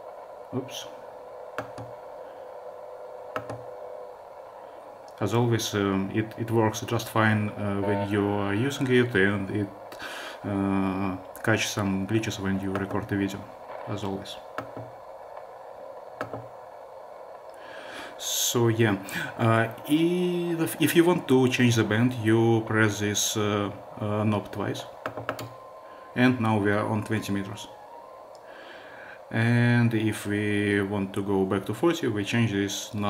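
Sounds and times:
radio receiver hiss: 0.0 - 33.0
tuning knob clicks: 3.3 - 3.7.

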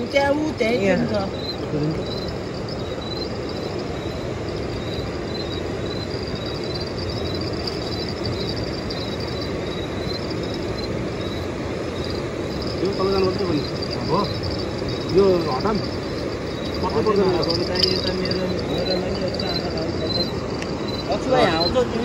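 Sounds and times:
river water rushing: 0.0 - 22.0
faint high chirp: 0.8 - 21.9.

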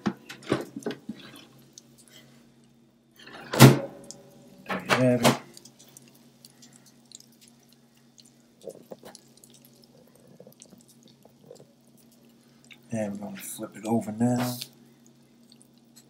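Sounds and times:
electrical hum: 0.0 - 16.0
fried chicken crackling: 0.8 - 2.8, 4.0 - 16.0
person speaking: 4.7 - 5.6, 12.8 - 14.8.

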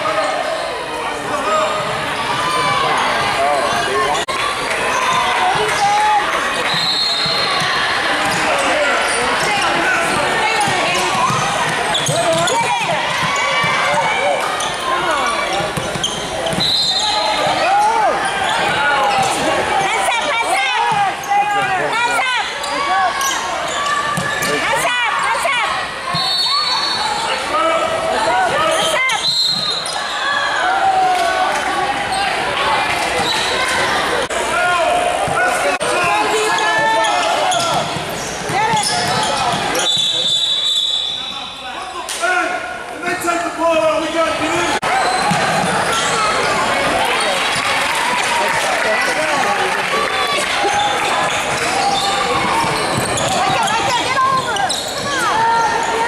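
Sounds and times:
voices talking and calling out: 0.0 - 56.0.

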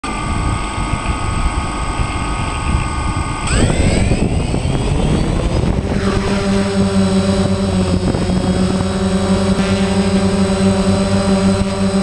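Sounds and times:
drone propellers whining: 0.0 - 12.0
propeller wash rushing: 0.1 - 12.0.

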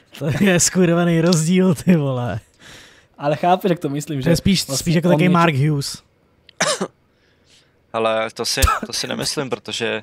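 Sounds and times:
faint breath: 2.6 - 3.2, 7.1 - 7.8.

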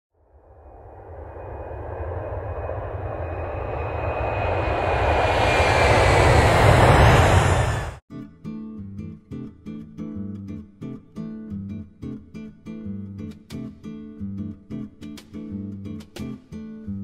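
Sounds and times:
faint engine whine: 0.2 - 8.0
jet airliner flying past: 0.3 - 8.0.

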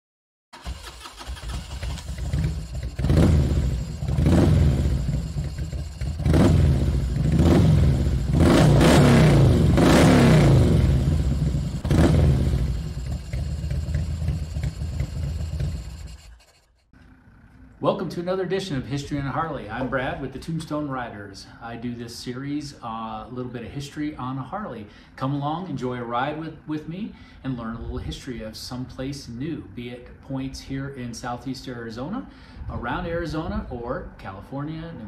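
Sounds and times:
motorcycle engine revving: 0.6 - 16.9.

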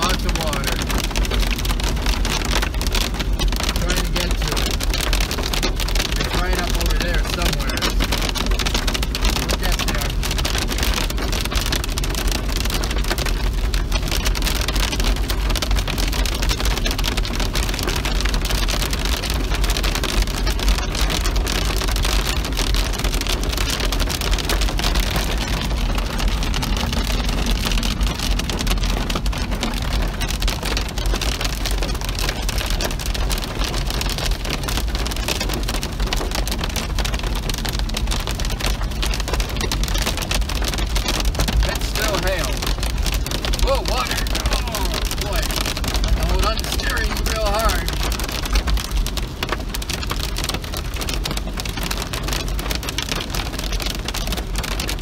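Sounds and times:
car rumbling on wet road: 0.0 - 55.0
heavy rain on car roof: 0.0 - 55.0.

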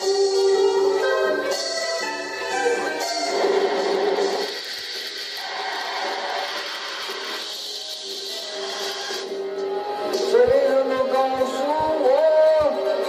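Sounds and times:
backing music: 0.0 - 13.0.

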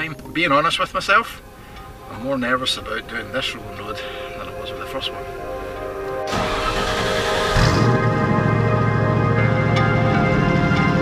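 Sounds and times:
background music: 0.0 - 11.0
car engine starting up: 6.2 - 9.9.

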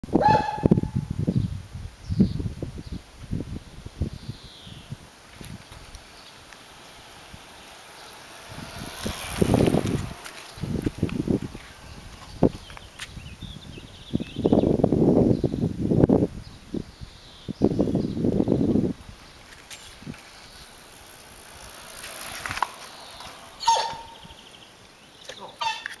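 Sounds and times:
bicycle rolling past: 3.3 - 26.0.

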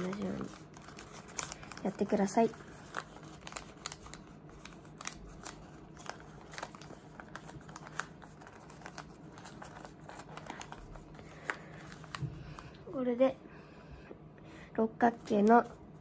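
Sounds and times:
paper rustling and crinkling: 0.0 - 12.8.

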